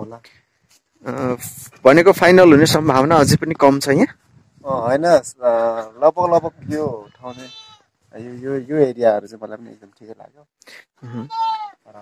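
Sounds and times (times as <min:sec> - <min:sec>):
goat bleating: 0:07.0 - 0:07.9, 0:11.0 - 0:11.9.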